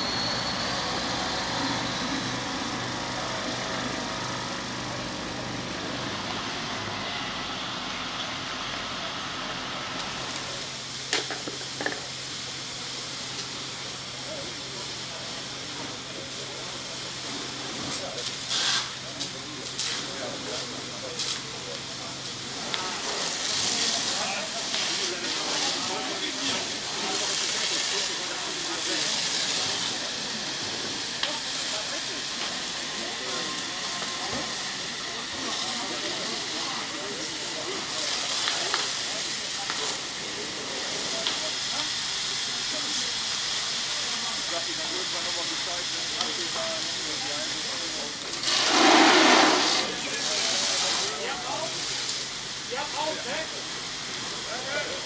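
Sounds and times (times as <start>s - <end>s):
fire hose water spraying: 0.1s - 55.0s.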